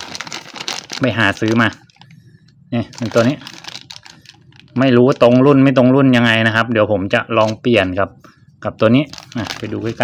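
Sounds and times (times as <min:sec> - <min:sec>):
plastic bag crinkling: 0:00.0 - 0:05.8, 0:09.0 - 0:10.0.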